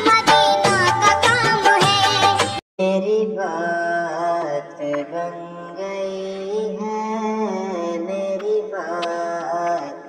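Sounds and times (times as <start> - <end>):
wordless chant-like singing: 1.7 - 10.0.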